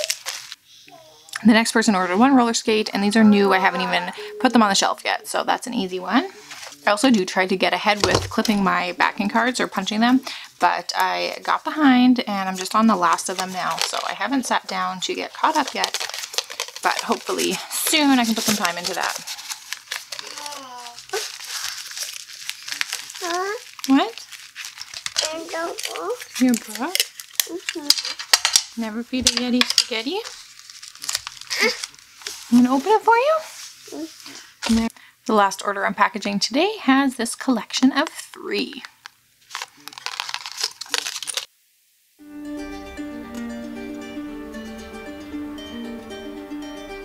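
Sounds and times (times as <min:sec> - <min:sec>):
paper rustling and crinkling: 0:00.0 - 0:00.6, 0:06.2 - 0:07.0, 0:12.4 - 0:34.9, 0:39.4 - 0:41.5.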